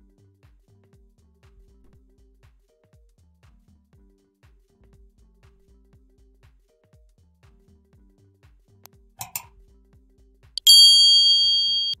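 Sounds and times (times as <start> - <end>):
bright bell ding: 10.6 - 12.0
short click: 10.6 - 12.0.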